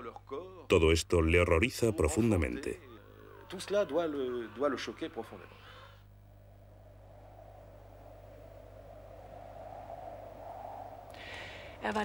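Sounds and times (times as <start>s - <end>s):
low electrical hum: 0.0s - 12.0s
faint wavering drone: 2.0s - 12.0s.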